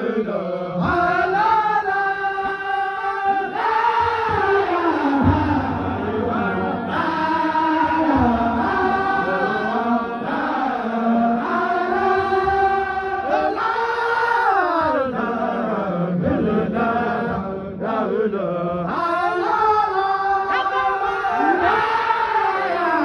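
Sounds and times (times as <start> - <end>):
men chanting together: 0.0 - 23.0.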